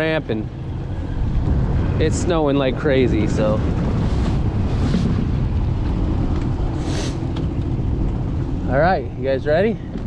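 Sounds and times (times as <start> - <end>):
outboard motor running: 0.0 - 10.0
wind buffeting microphone: 0.0 - 10.0.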